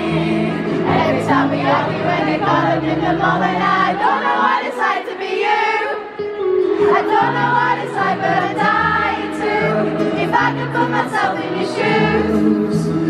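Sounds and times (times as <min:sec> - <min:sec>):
acoustic guitar and band: 0:00.0 - 0:04.2, 0:06.0 - 0:13.0
crowd singing along: 0:00.0 - 0:13.0.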